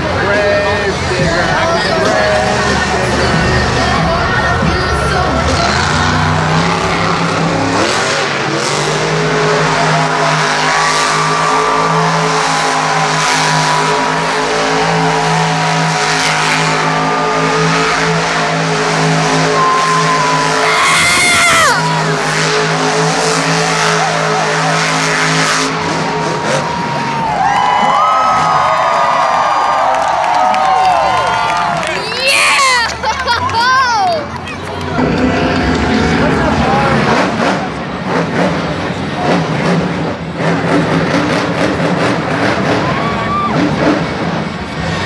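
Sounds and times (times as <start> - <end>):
monster truck engines revving: 0.0 - 45.0.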